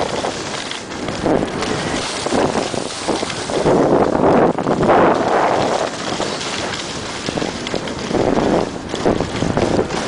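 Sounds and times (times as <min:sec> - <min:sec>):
skis scraping snow: 0:00.0 - 0:10.0
wind rushing over microphone: 0:00.0 - 0:10.0.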